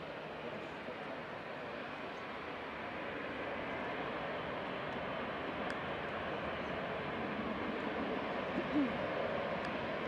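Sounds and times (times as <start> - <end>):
jet engines rushing: 0.0 - 10.0.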